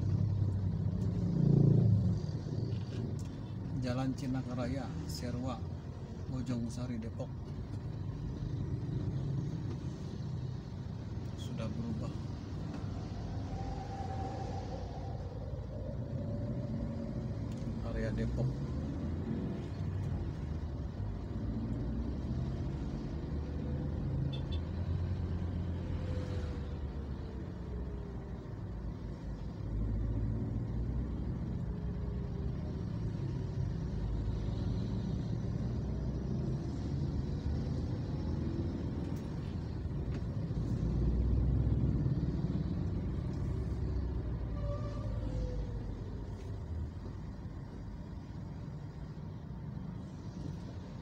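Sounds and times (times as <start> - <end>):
road traffic rumble: 0.0 - 51.0.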